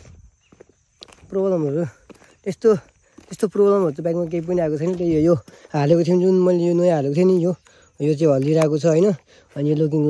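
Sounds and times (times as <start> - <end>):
person speaking: 1.2 - 10.0.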